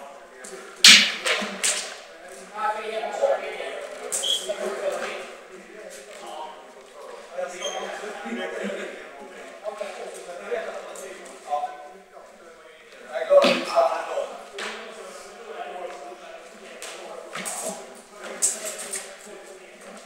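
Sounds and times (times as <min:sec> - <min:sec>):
indistinct voices in a hall: 0:00.0 - 0:20.0.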